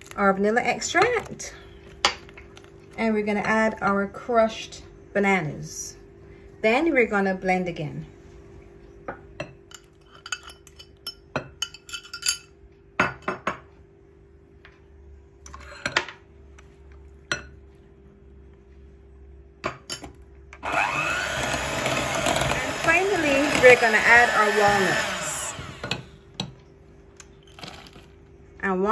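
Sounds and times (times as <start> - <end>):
electric hand mixer whining: 20.6 - 26.1.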